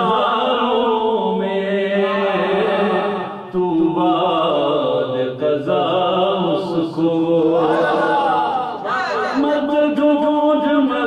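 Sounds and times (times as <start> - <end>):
man singing devotional song: 0.0 - 8.7, 9.3 - 11.0.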